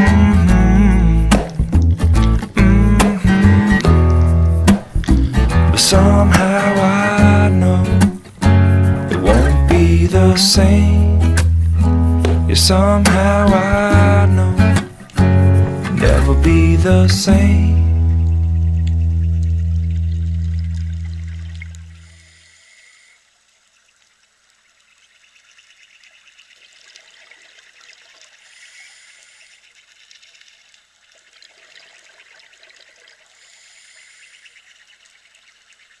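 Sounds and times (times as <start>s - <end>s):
acoustic guitar chord ringing: 0.0s - 1.7s, 2.3s - 18.8s
faint bubbling water: 17.7s - 36.0s.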